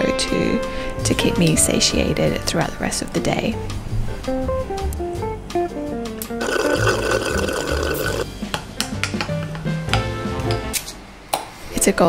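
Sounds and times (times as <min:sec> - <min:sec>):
acoustic guitar music: 0:06.0 - 0:08.3
slurping through a straw: 0:06.4 - 0:08.3.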